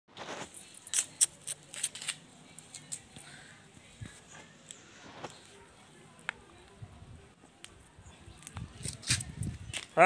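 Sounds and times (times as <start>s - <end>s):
sharp high clicks and scuffs: 0.2s - 3.2s, 8.4s - 10.0s.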